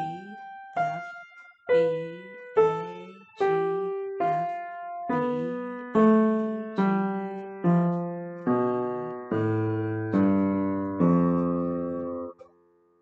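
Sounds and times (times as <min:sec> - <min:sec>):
slow piano notes: 0:00.0 - 0:13.0.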